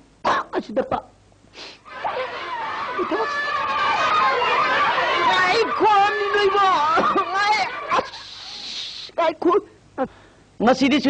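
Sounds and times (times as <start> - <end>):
faint hiss: 1.3 - 1.9, 8.1 - 10.9.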